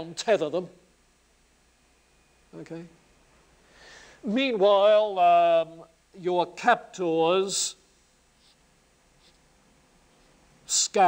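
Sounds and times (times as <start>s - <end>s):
marker pen on whiteboard: 8.4s - 10.4s.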